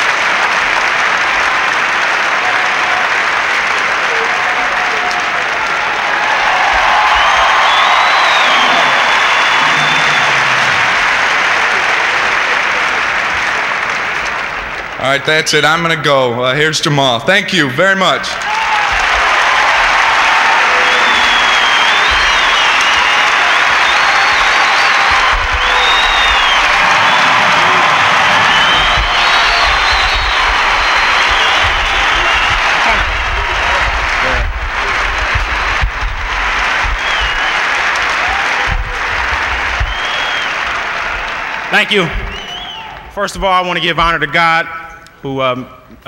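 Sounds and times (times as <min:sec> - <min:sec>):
arena crowd applauding: 0:00.0 - 0:16.0, 0:18.0 - 0:44.3.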